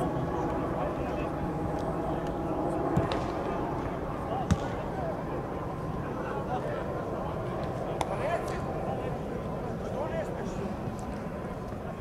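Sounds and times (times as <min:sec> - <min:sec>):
players' voices: 0:00.0 - 0:12.0
football being kicked: 0:04.5 - 0:04.7.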